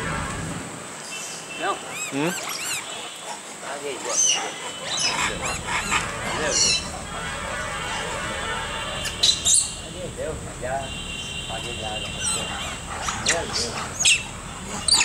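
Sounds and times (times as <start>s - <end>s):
monkeys squealing and cooing: 1.7s - 10.0s, 12.0s - 15.0s.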